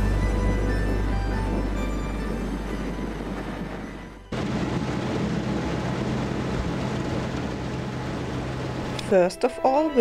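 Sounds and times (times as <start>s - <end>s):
water rushing: 0.0s - 9.1s
ferry engine humming: 0.0s - 10.0s
wind rushing: 0.4s - 9.0s.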